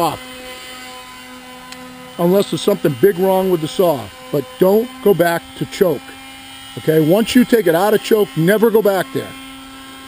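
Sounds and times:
machine hum: 0.0 - 10.0.

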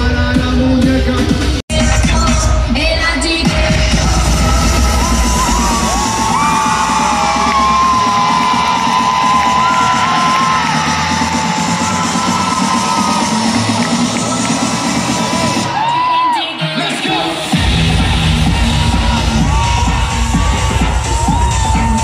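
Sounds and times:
loud live concert music: 0.0 - 22.0
crowd cheering and whooping: 4.1 - 22.0.

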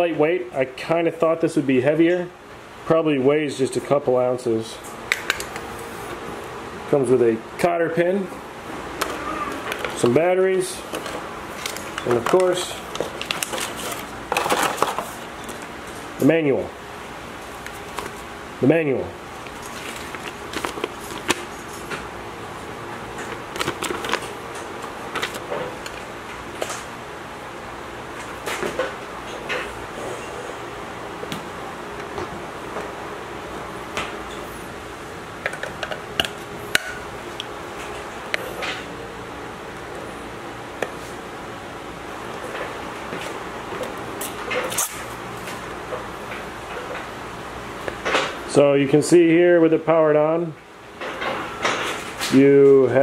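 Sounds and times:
steady low hum: 0.0 - 53.0
paper rustling: 10.9 - 15.7, 19.4 - 22.0, 23.2 - 26.8.

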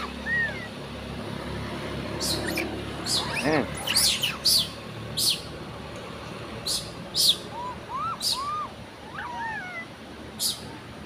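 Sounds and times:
bird chirp sweeping downward: 0.0 - 0.7, 2.2 - 5.4, 6.7 - 9.8
soft bird calls: 0.0 - 0.9, 2.1 - 5.6, 6.6 - 10.8.

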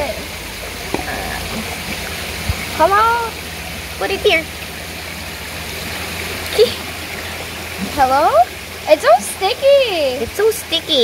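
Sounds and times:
running water: 0.0 - 11.0.

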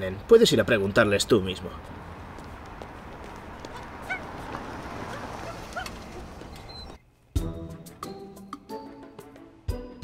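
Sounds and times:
outdoor background noise: 0.0 - 9.7
distant dog barks: 3.6 - 6.5.

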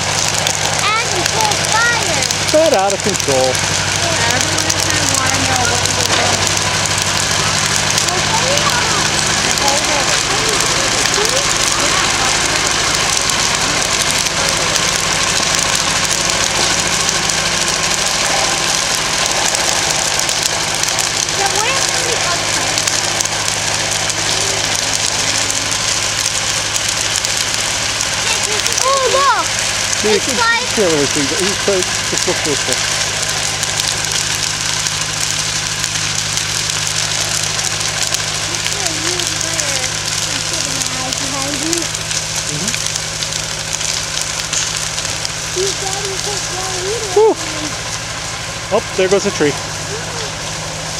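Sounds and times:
fire flames rushing: 0.0 - 50.9
low hum: 0.0 - 50.9.

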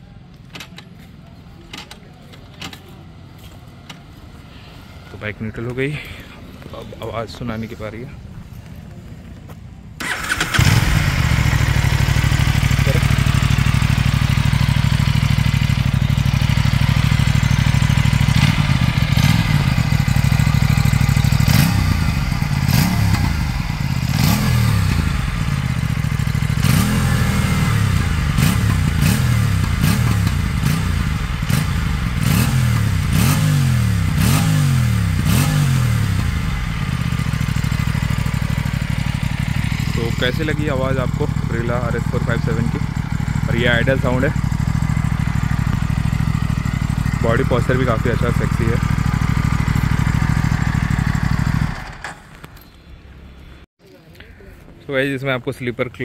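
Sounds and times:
motorcycle engine revving: 10.0 - 52.6.

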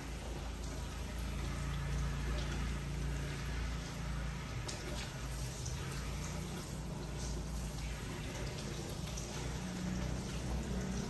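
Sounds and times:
water pouring over head: 0.0 - 11.0
water splashing into basin: 0.0 - 11.0.

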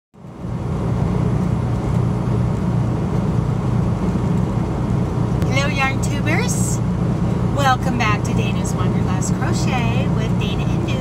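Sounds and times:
diesel truck engine drone: 0.2 - 11.0.

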